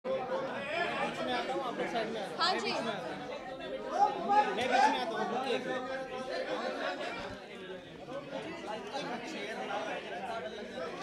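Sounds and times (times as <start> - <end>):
overlapping chatter: 0.1 - 11.0.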